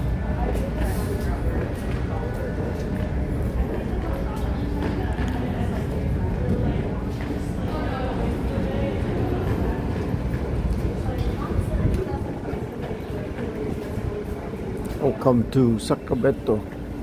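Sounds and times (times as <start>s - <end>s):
faint voices: 0.0s - 17.0s.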